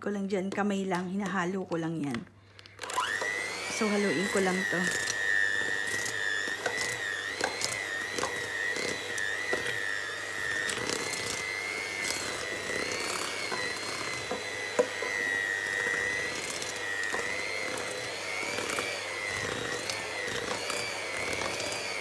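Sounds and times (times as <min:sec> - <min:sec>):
electric hand mixer whine: 0:02.6 - 0:22.0.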